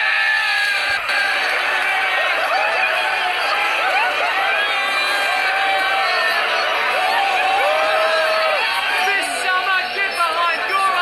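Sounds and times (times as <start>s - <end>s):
men cheering and whooping: 0.0s - 11.0s.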